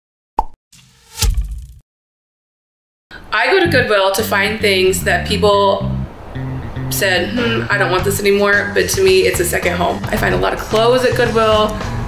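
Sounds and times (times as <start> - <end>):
short pop: 0.4 - 1.8
sharp hit: 0.8 - 1.8.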